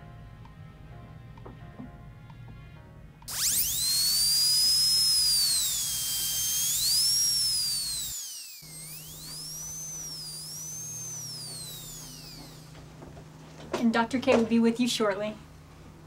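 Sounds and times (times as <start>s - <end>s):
dental drill whining: 3.3s - 13.0s.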